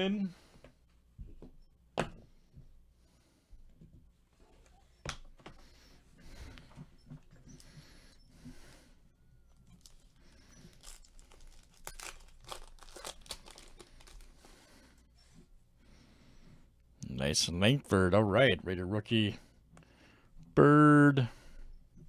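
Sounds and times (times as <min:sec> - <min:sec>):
foil packs crinkling: 0:09.8 - 0:14.9.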